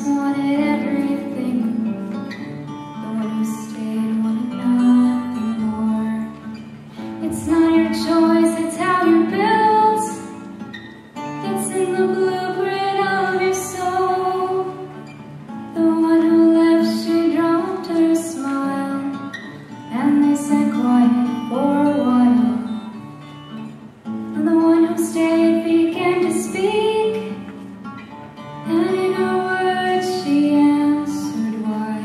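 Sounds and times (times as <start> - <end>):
woman singing into microphone: 0.0 - 10.5, 11.4 - 15.0, 15.7 - 23.0, 24.4 - 27.6, 28.6 - 32.0.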